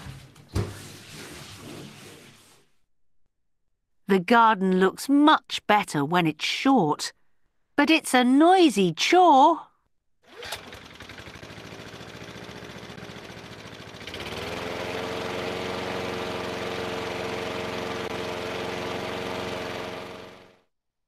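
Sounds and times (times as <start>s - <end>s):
lawn mower engine running: 10.2s - 20.6s.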